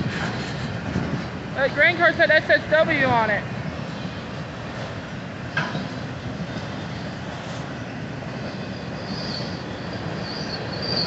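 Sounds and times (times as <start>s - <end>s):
freight train wheels rumbling: 0.0s - 11.0s
high-pitched wheel squeal: 8.4s - 11.0s.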